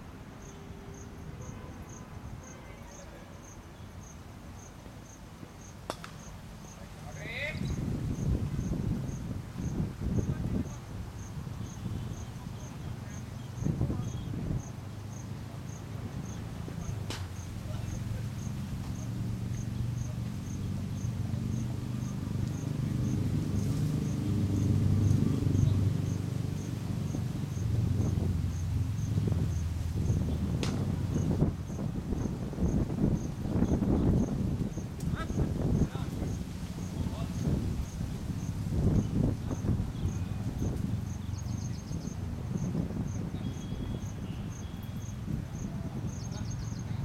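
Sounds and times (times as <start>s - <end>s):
insect chirping: 0.1s - 47.0s.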